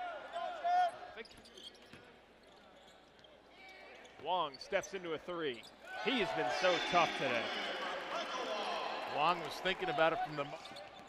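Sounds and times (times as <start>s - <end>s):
shoes squeaking on hardwood court: 1.2s - 5.9s, 10.2s - 11.0s.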